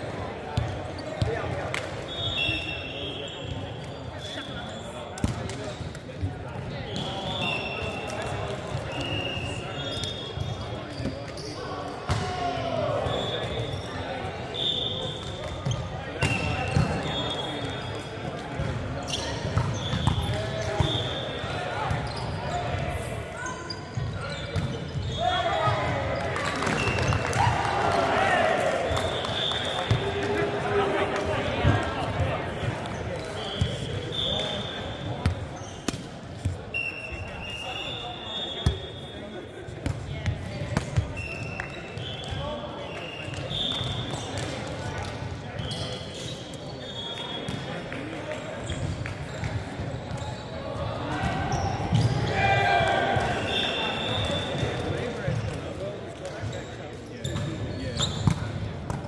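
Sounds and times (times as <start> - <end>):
sneakers squeaking on floor: 0.5 - 5.9, 6.5 - 27.3, 31.4 - 44.6, 45.5 - 47.8, 48.6 - 52.4, 53.2 - 59.0.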